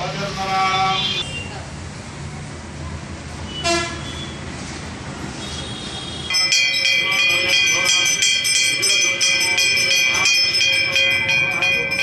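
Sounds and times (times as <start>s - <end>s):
brass temple bell ringing: 6.3s - 12.0s.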